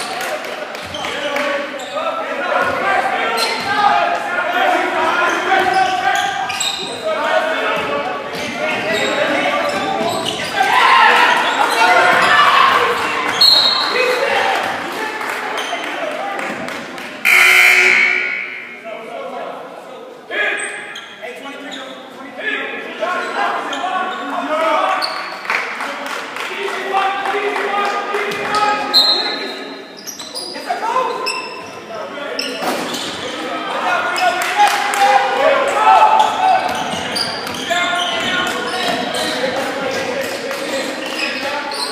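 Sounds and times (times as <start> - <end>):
crowd chatter: 0.0 - 41.9
sneakers squeaking: 2.7 - 3.8, 4.5 - 7.1, 7.7 - 14.1, 17.3 - 18.8, 20.6 - 22.1, 23.2 - 25.4, 28.9 - 34.4, 35.6 - 41.9
referee's whistle: 13.4 - 13.9, 17.3 - 18.8, 28.9 - 29.4.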